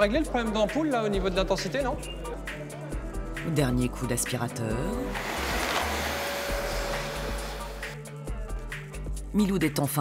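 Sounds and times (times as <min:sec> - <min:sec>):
background music: 0:00.0 - 0:10.0
vacuum cleaner running on carpet: 0:05.1 - 0:07.9.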